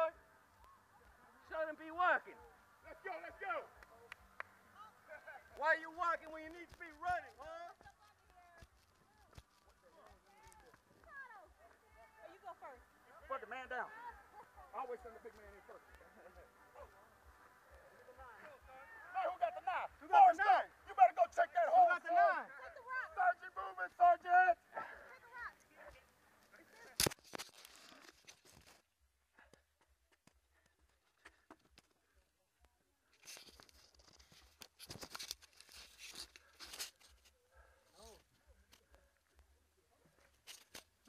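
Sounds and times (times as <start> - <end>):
voices calling out: 9.8 - 26.9.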